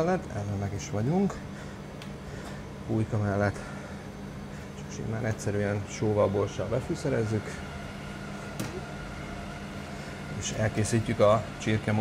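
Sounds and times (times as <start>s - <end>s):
kitchen machinery humming: 0.0s - 12.0s.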